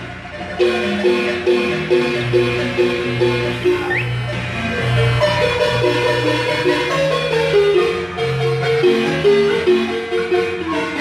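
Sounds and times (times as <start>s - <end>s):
marimba chords: 0.0s - 11.0s.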